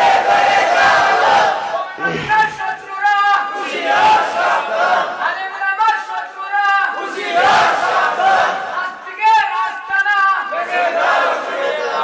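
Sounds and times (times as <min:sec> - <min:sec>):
men chanting: 0:00.0 - 0:02.7
crowd noise: 0:00.0 - 0:12.0.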